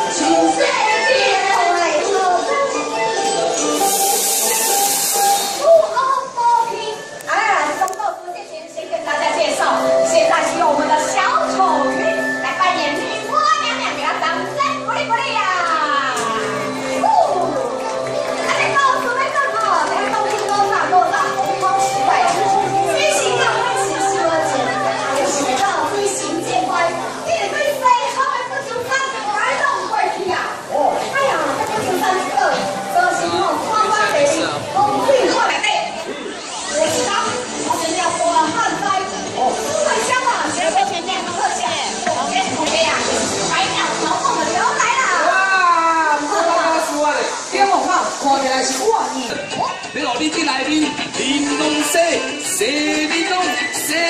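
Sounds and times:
crowd chattering: 0.0s - 54.0s
people's voices: 0.0s - 54.0s
loud steady hiss: 3.4s - 6.3s, 20.6s - 54.0s
high rising and falling call: 3.7s - 5.9s.

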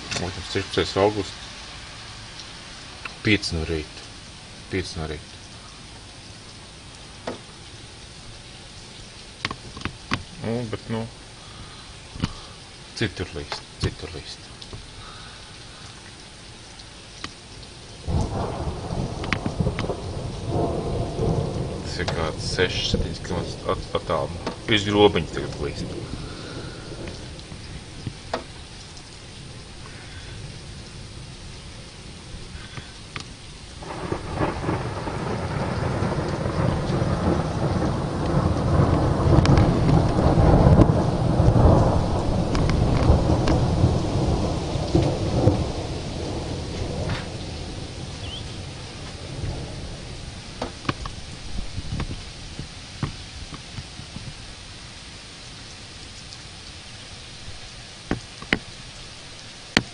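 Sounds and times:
steady rain: 0.0s - 59.9s
rolling thunder: 18.0s - 54.5s.

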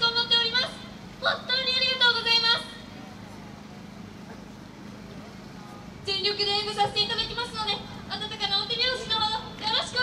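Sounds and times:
engine humming: 0.0s - 10.0s
faint outdoor background: 0.0s - 10.0s.

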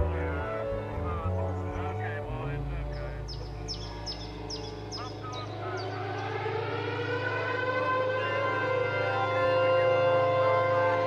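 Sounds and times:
air-raid siren wailing: 0.0s - 11.0s
steady low drone: 0.0s - 11.0s.

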